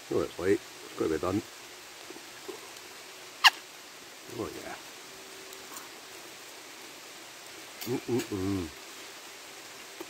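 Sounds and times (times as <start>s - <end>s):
rain falling through woodland: 0.0s - 10.0s.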